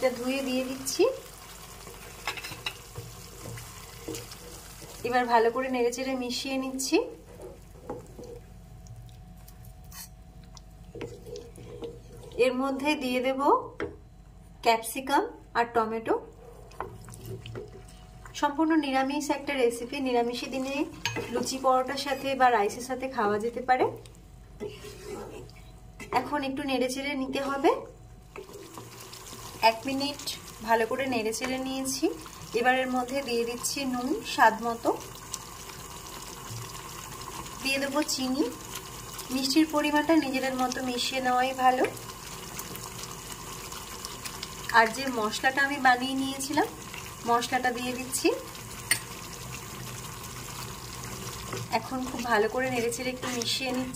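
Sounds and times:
wooden spatula stirring in pan: 0:00.0 - 0:06.4, 0:07.1 - 0:08.6, 0:10.9 - 0:12.6, 0:16.7 - 0:18.0, 0:24.6 - 0:25.6, 0:28.3 - 0:32.6, 0:48.8 - 0:53.9
gravy hissing in a pan: 0:00.0 - 0:08.4, 0:24.6 - 0:25.6, 0:28.3 - 0:53.9.

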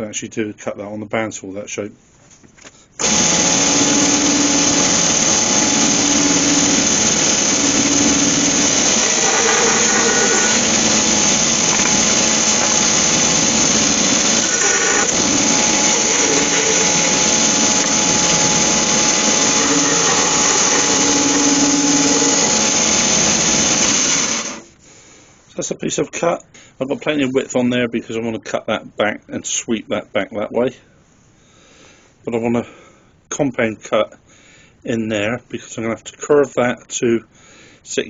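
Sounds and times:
bandsaw cutting wood: 0:03.0 - 0:24.7.

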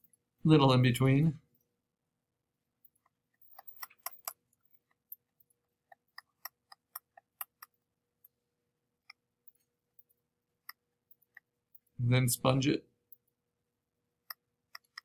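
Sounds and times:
computer mouse clicks: 0:14.3 - 0:15.0.

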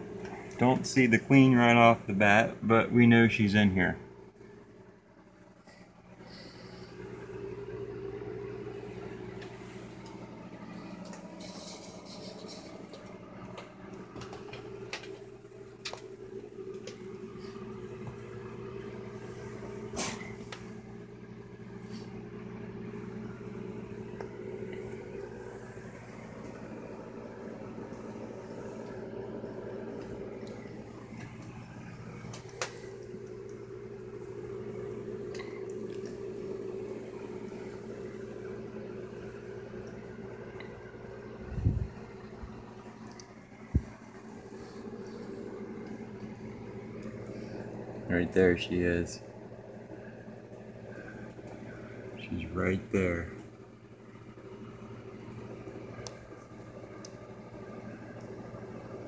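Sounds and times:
droning hum of bees: 0:00.0 - 0:59.0.

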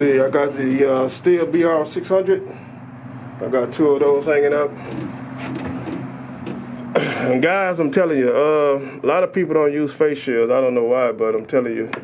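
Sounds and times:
low engine-like hum: 0:00.0 - 0:10.9.

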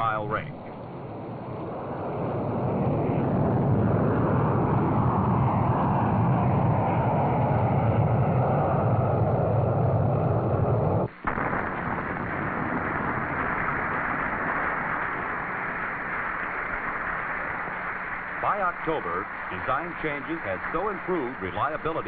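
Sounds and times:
rocket motor roaring: 0:01.9 - 0:22.0.

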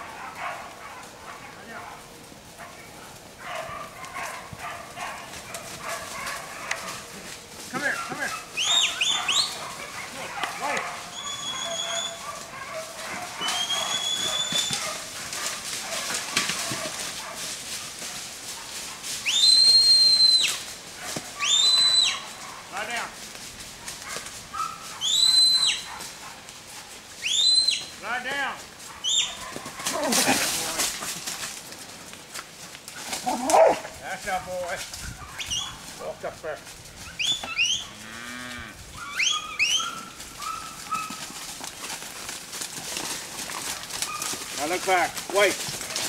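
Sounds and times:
rustling in dry leaves: 0:00.0 - 0:46.0
high whistles: 0:11.1 - 0:12.2, 0:13.4 - 0:14.8, 0:19.2 - 0:20.6, 0:25.0 - 0:25.9.

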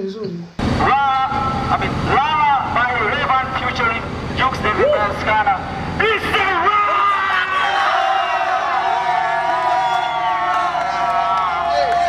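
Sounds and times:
low background rumble: 0:00.6 - 0:11.7
people shouting excitedly: 0:06.0 - 0:12.0.

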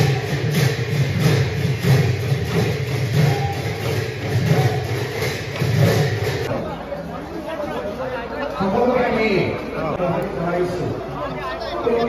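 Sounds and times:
rhythmic accompaniment: 0:00.0 - 0:06.5.

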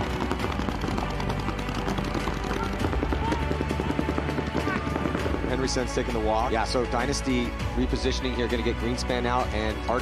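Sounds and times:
paintball markers firing: 0:00.0 - 0:05.8
background music: 0:00.0 - 0:10.0.

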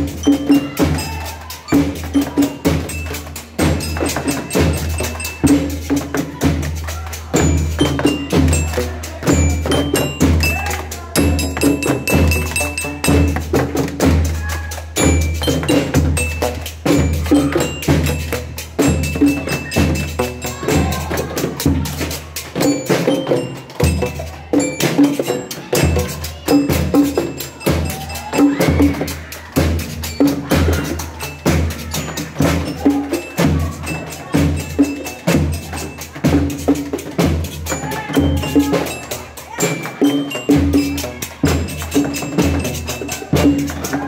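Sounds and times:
metallophone notes: 0:00.0 - 0:44.0.

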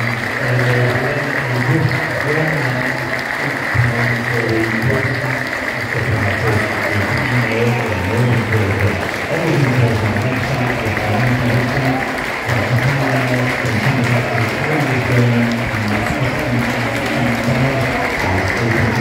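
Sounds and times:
crowd applauding: 0:00.0 - 0:19.0.

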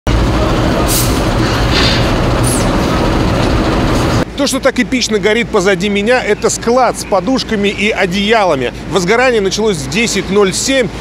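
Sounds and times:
fire roaring: 0:00.1 - 0:04.3.

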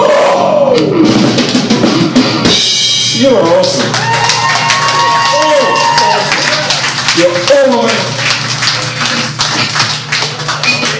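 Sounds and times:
metal band playing: 0:00.1 - 0:04.0
drum kit hits: 0:00.6 - 0:03.9.

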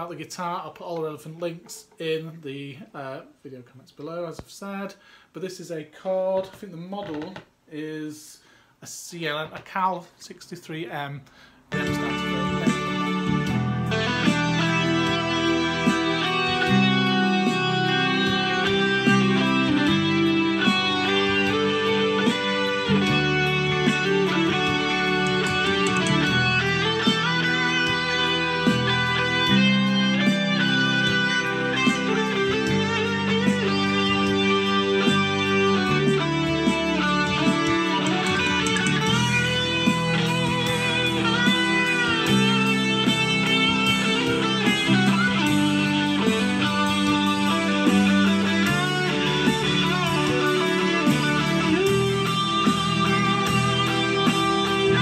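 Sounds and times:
backing track beat: 0:11.7 - 0:55.0
electric guitar lead: 0:11.7 - 0:55.0
bass line: 0:11.8 - 0:55.0.

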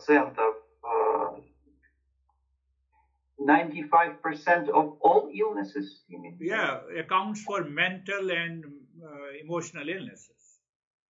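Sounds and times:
person speaking: 0:06.2 - 0:10.5.

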